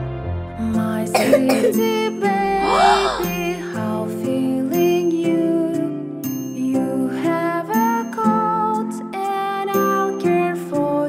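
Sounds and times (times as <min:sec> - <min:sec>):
slow backing music: 0:00.0 - 0:11.0
cartoon character coughing: 0:01.1 - 0:01.8.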